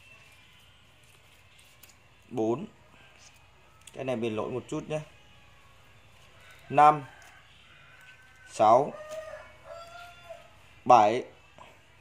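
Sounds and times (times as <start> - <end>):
rooster crowing: 6.3 - 10.7.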